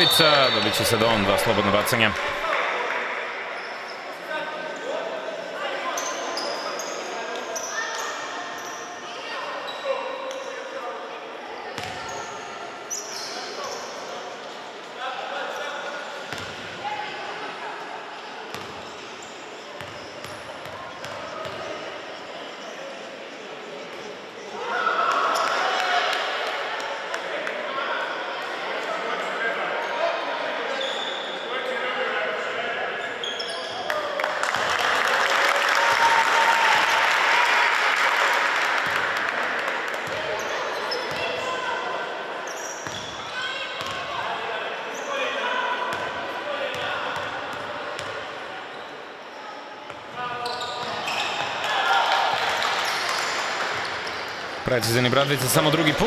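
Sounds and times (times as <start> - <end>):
voices echoing in sports hall: 0.0 - 56.0.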